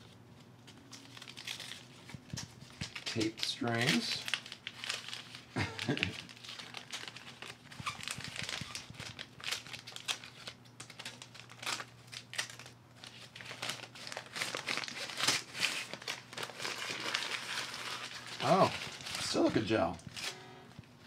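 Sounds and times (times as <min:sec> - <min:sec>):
paper crinkling and tearing: 0:00.0 - 0:20.4.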